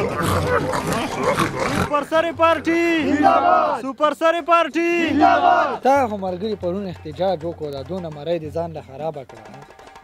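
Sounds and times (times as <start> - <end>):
crowd of men shouting and cheering: 1.9 - 6.3.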